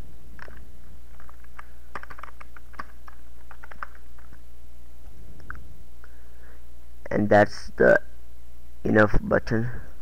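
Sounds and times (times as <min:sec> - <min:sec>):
typing on computer keyboard: 0:00.4 - 0:04.4.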